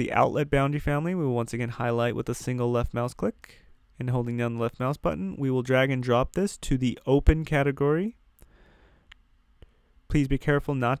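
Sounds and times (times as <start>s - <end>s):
soft breath-like hiss: 8.4s - 10.1s.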